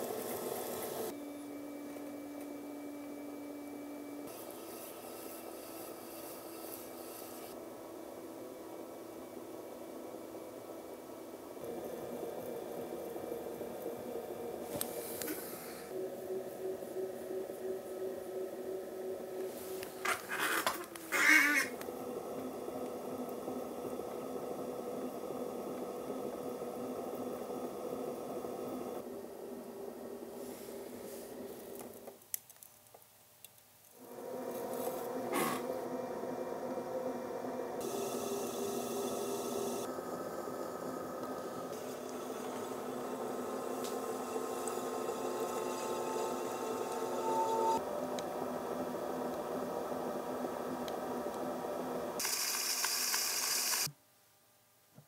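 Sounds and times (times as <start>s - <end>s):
pottery wheel humming: 0.0s - 32.0s, 34.0s - 53.9s.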